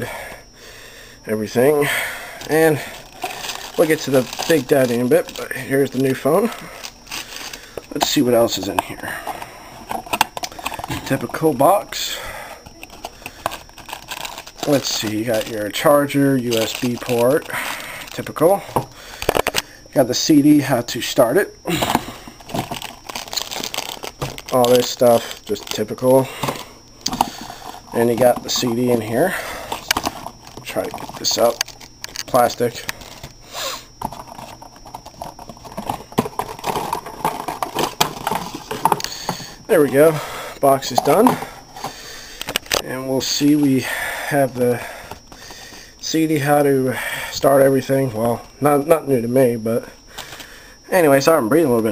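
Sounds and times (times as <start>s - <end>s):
cardboard box rustling: 22.5s - 25.8s.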